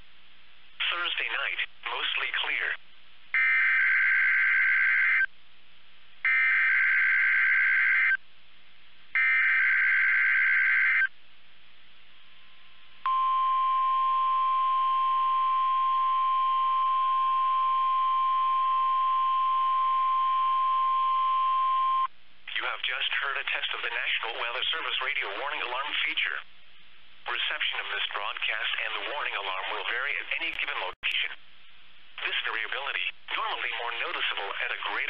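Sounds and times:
screeching digital data bursts: 3.4s - 5.3s, 9.2s - 11.1s
steady warning alarm tone: 3.4s - 5.3s, 6.3s - 8.2s, 9.2s - 11.1s, 13.1s - 22.1s.

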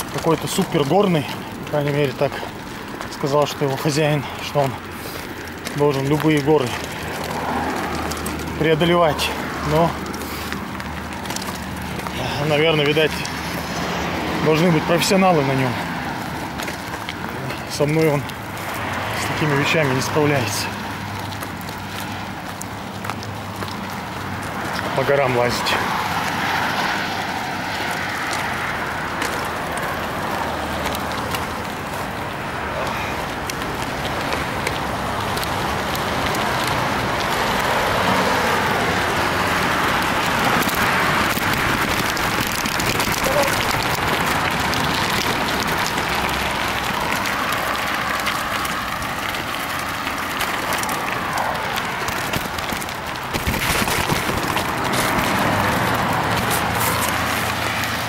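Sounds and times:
bike tyres crunching on gravel: 0.0s - 58.0s.

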